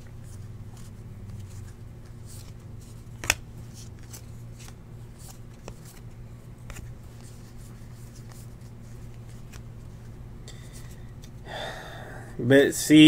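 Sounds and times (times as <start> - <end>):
steady low hum: 0.0 - 13.0
trading cards flicked through: 3.1 - 6.9.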